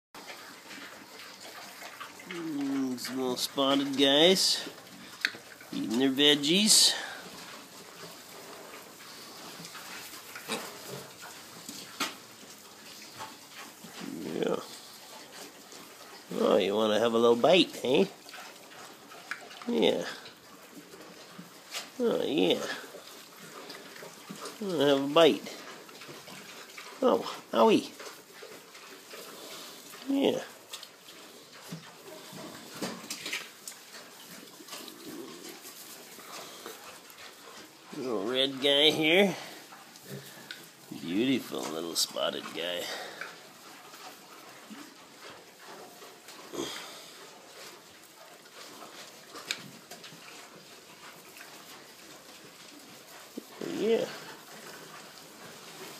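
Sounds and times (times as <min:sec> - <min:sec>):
piglets grunting softly: 0:01.6 - 0:07.5, 0:13.2 - 0:15.6, 0:21.7 - 0:28.2, 0:34.3 - 0:44.9, 0:45.7 - 0:47.8, 0:53.1 - 0:55.9
rustling in straw: 0:28.1 - 0:38.2.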